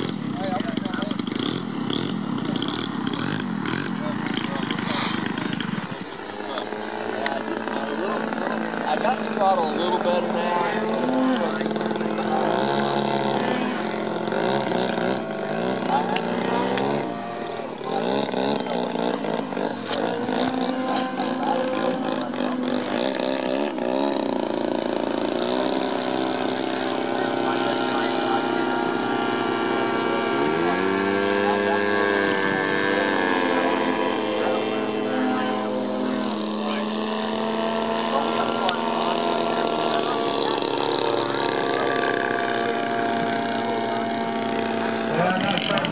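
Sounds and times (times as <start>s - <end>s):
model airplane motor and propeller: 0.0s - 45.9s.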